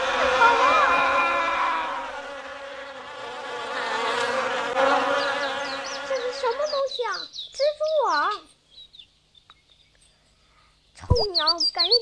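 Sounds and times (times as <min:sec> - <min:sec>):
flying insects buzzing: 0:00.0 - 0:07.4.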